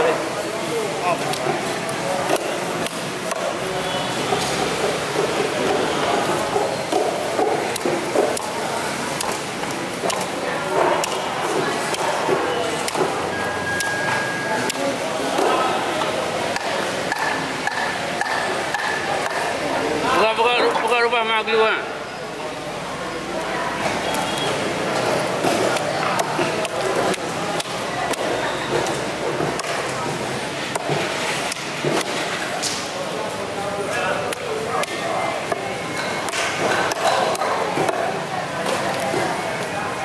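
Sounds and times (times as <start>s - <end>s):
indistinct chatter: 0.0s - 40.0s.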